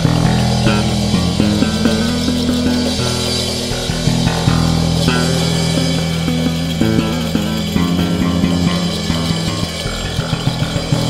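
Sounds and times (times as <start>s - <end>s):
electric bass guitar melody: 0.0s - 11.0s.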